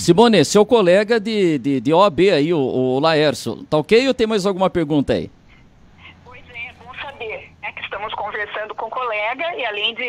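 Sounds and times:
faint low line hum: 0:00.1 - 0:10.0
woman talking on phone: 0:06.0 - 0:10.0.

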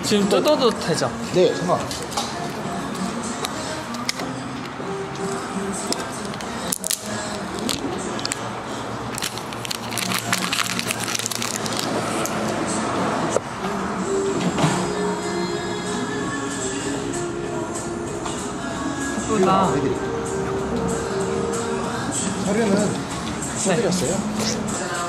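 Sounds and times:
background music: 0:00.0 - 0:25.0
plastic wrap crackling: 0:06.0 - 0:08.4, 0:09.1 - 0:12.0.

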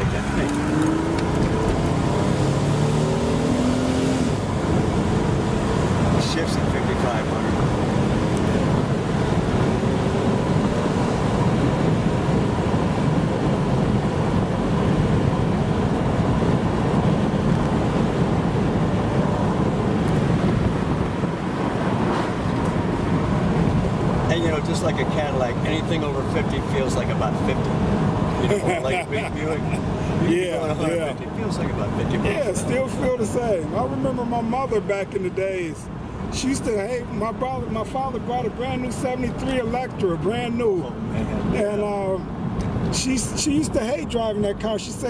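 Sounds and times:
car engine: 0:00.0 - 0:45.0
tyre road and wind noise: 0:00.0 - 0:45.0.

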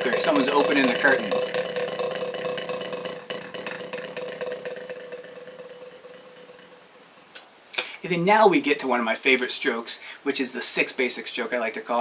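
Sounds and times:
drum buzz roll on practice pad: 0:00.0 - 0:07.3.

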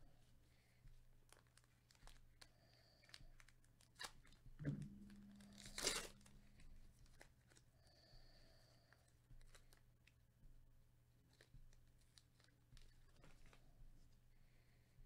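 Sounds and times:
foil pack crinkling: 0:01.3 - 0:02.3
low thump: 0:04.6 - 0:06.6.

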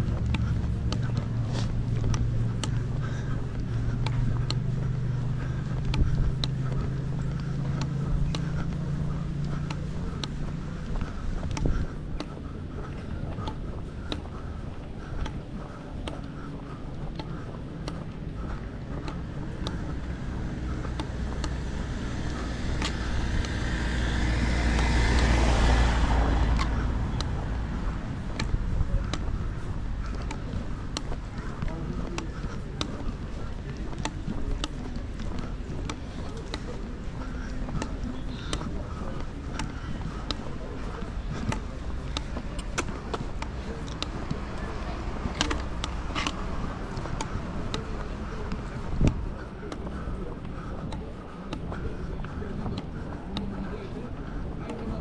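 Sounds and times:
light sharp footstep taps: 0:00.0 - 0:23.7, 0:26.1 - 0:55.0
car passing on cobbles: 0:00.0 - 0:55.0
town street noise: 0:00.0 - 0:55.0.

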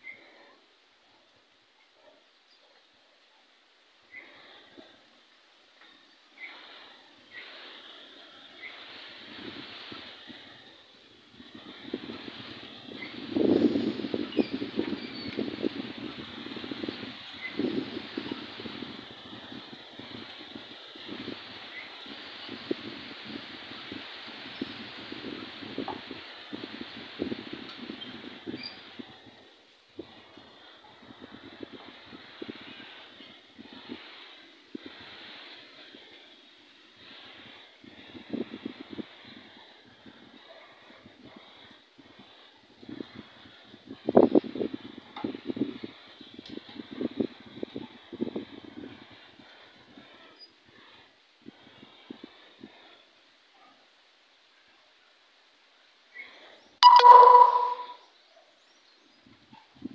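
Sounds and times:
steady hiss: 0:00.0 - 0:56.8
faint bird chirps: 0:56.2 - 0:59.0.

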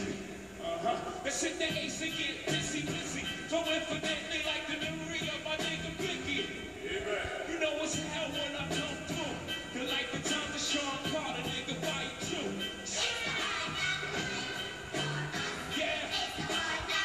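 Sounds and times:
man rapping over drum beat: 0:01.2 - 0:06.6, 0:07.3 - 0:12.6.

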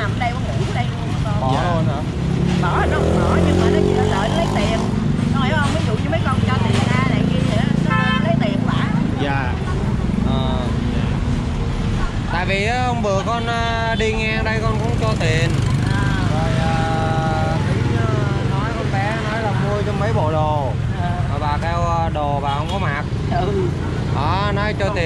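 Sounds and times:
woman speaking: 0:00.0 - 0:02.0, 0:02.6 - 0:10.1, 0:15.8 - 0:16.4, 0:23.3 - 0:23.7
motorbike engines humming: 0:00.0 - 0:25.0
street traffic: 0:00.0 - 0:25.0.

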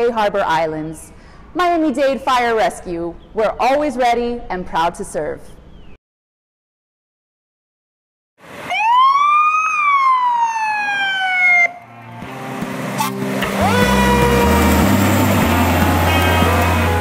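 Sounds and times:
fire engine siren wailing: 0:08.6 - 0:17.0
rock music with bass and guitar: 0:12.0 - 0:17.0.

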